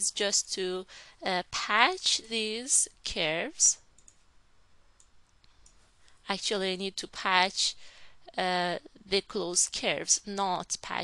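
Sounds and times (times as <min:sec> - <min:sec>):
computer mouse clicks: 0:03.9 - 0:04.2, 0:05.0 - 0:05.8.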